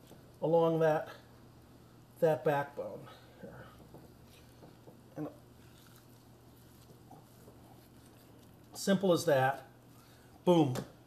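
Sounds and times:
knife cutting meat: 5.5s - 8.5s.

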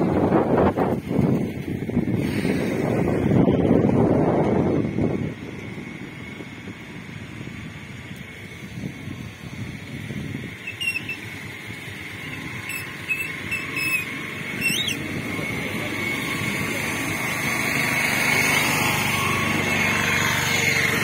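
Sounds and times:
low traffic rumble: 0.0s - 21.0s
vehicle engine: 0.0s - 21.0s
short high chirps: 10.6s - 11.3s, 12.4s - 15.0s.

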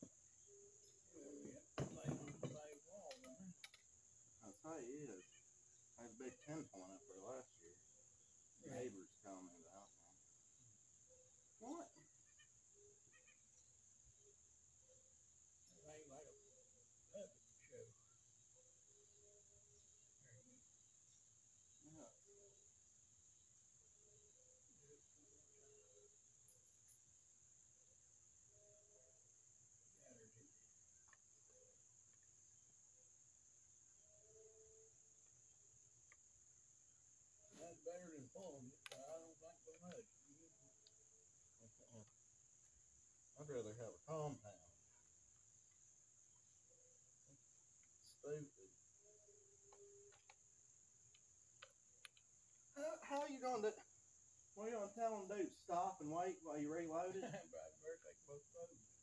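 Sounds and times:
crickets chirring: 0.0s - 59.0s
high insect drone: 0.0s - 59.0s.

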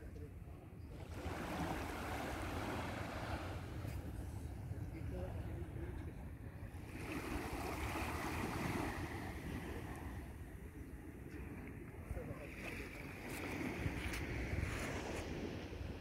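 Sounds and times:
wind buffeting microphone: 7.8s - 16.0s.

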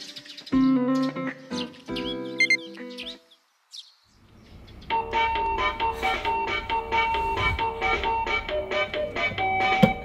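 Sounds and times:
bird chirps: 0.0s - 5.7s.

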